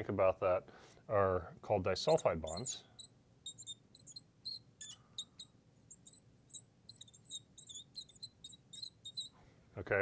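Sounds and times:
marker squeaking on glass: 2.1 - 9.4.

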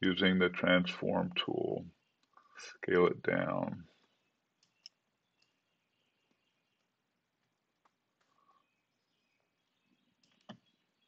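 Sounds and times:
computer mouse clicks: 4.6 - 5.6, 10.2 - 10.7.

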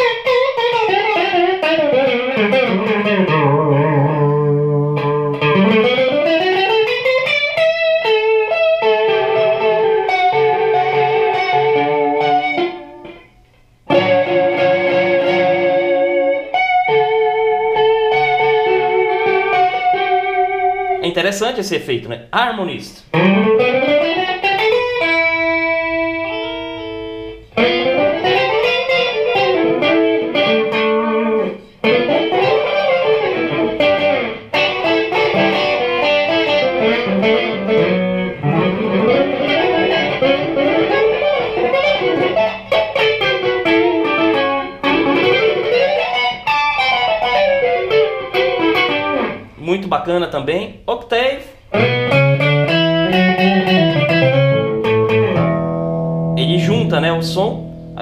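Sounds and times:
electric guitar with harmony effect: 0.0 - 21.0, 23.1 - 49.6, 51.6 - 58.0.

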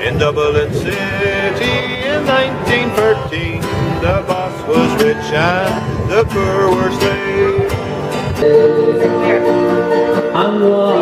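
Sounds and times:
acoustic guitar strumming: 0.0 - 11.0
man singing folk ballad: 0.0 - 11.0.

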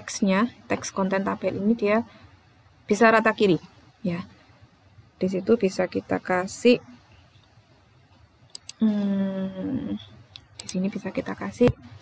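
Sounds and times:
computer mouse clicks: 8.5 - 8.8, 10.3 - 11.8
person humming: 8.8 - 10.0.

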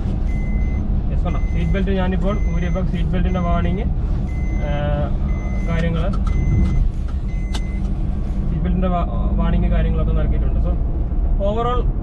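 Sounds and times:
engine and road rumble: 0.0 - 12.0
seat belt warning beeps: 0.3 - 8.0.

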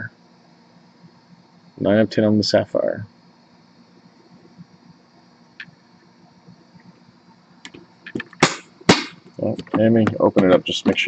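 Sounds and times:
room hum: 0.0 - 11.0
sharp knocks: 8.1 - 11.0.

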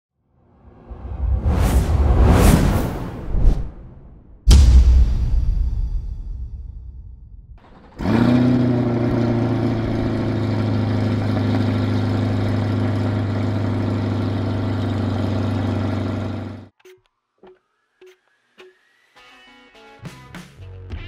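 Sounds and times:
car engine starting and idling: 7.6 - 16.7.

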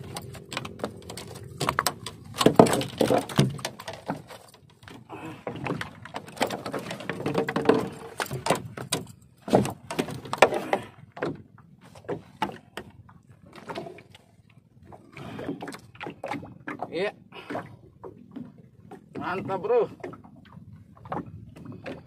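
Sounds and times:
knocks and rubbing on small boat: 0.0 - 14.1, 18.0 - 22.0.

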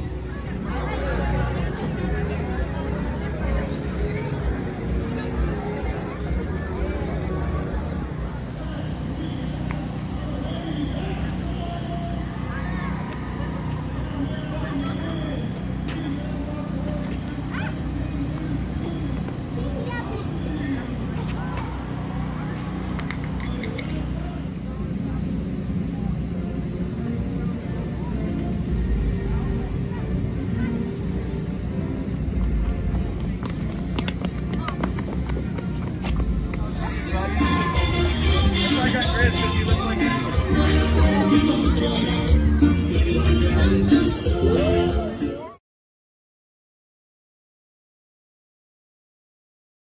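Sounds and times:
indistinct voices and chatter: 0.0 - 45.6.

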